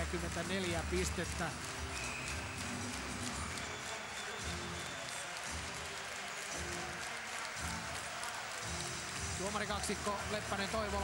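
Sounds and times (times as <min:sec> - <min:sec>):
music over arena loudspeakers: 0:00.0 - 0:11.0.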